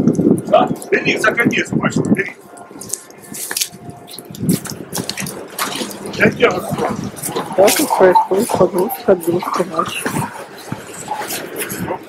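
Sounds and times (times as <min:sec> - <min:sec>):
footsteps squelching in slush: 0:02.5 - 0:12.0.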